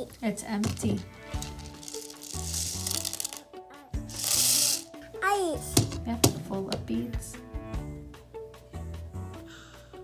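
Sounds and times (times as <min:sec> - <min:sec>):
beads poured between plastic cups: 0:01.0 - 0:04.9.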